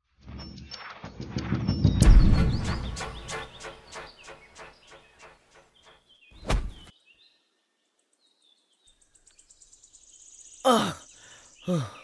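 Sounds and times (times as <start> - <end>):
birds chirping: 1.8 - 12.0
man crying out in pain: 10.7 - 11.0, 11.7 - 12.0.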